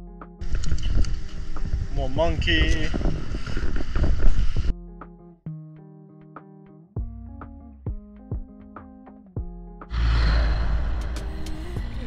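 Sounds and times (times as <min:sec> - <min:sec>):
wind noise on microphone: 0:00.4 - 0:04.7
music with plucked notes: 0:04.7 - 0:09.9.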